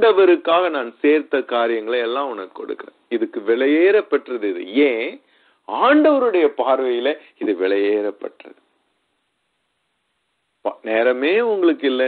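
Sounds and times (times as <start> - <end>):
man speaking: 0.0 - 8.6, 10.6 - 12.0
faint hiss: 0.0 - 12.0.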